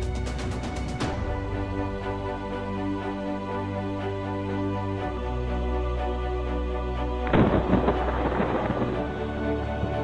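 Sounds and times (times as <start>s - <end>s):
soft background music: 0.0s - 10.0s
thunder clap and rumble: 7.2s - 10.0s.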